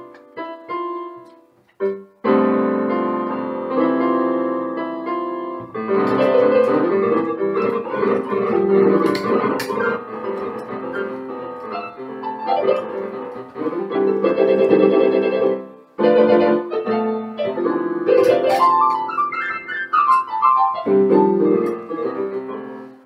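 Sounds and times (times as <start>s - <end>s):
electric piano playing: 0.0s - 23.0s.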